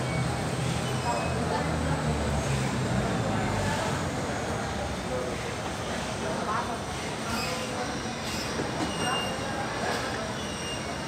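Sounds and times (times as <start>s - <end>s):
indoor hubbub: 0.0s - 11.0s
faint high squeaks: 7.3s - 9.5s, 10.4s - 11.0s.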